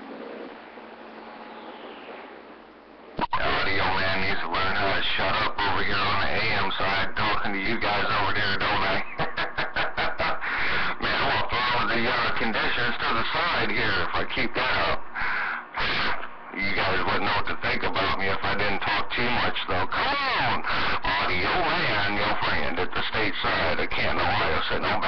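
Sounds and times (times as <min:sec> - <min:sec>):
radio static hiss: 0:02.1 - 0:25.0
voice through radio speaker: 0:03.2 - 0:25.0.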